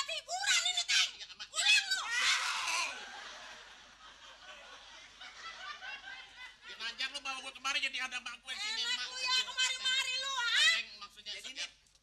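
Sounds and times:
person shouting shrill cry: 0:00.3 - 0:03.0.

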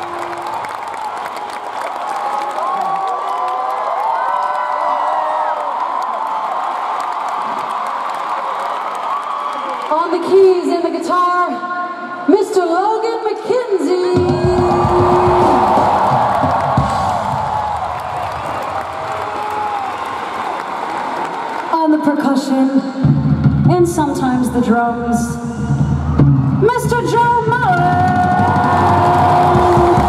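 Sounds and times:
crowd screaming and cheering: 0:00.0 - 0:10.3, 0:14.0 - 0:21.8, 0:25.4 - 0:30.0
bass and drums: 0:14.1 - 0:18.2, 0:23.0 - 0:30.0
woman singing into microphone: 0:26.7 - 0:30.0.

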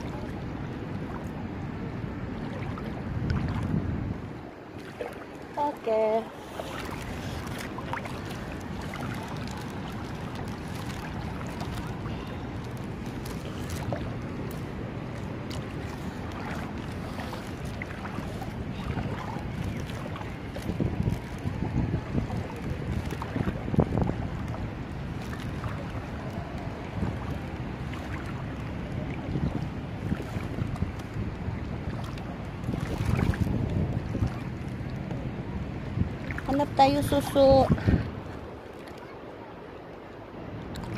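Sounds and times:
steady background noise: 0:00.0 - 0:40.9
wind on microphone: 0:00.0 - 0:40.9.

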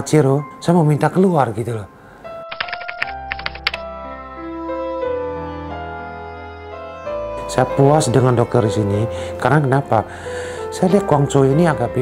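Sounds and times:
soft background music: 0:00.0 - 0:12.0
keyboard typing clicks: 0:02.4 - 0:03.8.

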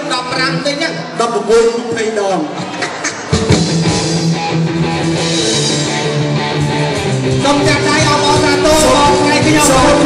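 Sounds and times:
live band with electric guitar: 0:02.5 - 0:10.0.

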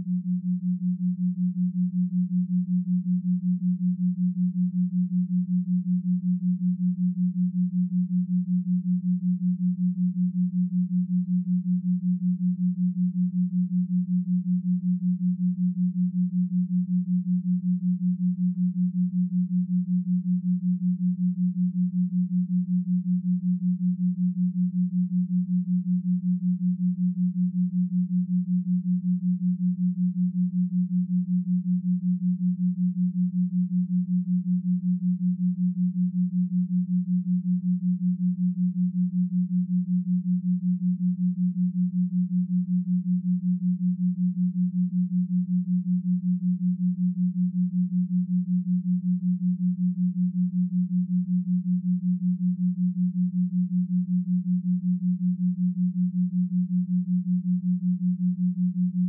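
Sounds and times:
pulsing low sine tone: 0:00.0 - 0:59.0.

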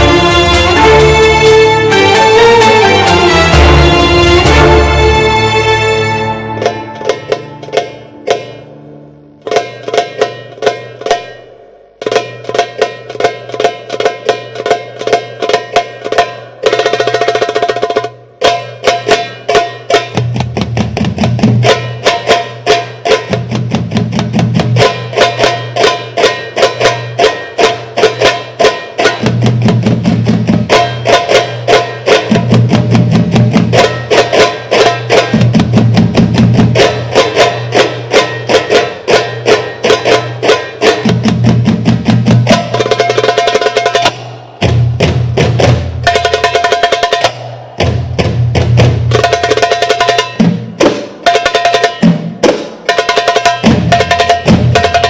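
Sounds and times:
darbuka: 0:00.0 - 0:55.0
frame drums struck by hand: 0:06.3 - 0:55.0
low drum rolls: 0:34.8 - 0:39.1, 0:44.0 - 0:51.0.

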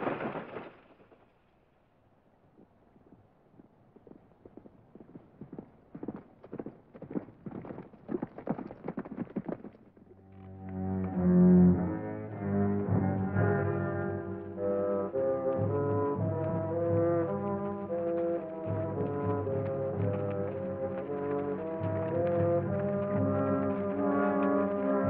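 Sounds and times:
orchestral music with brass melody: 0:11.1 - 0:25.0.

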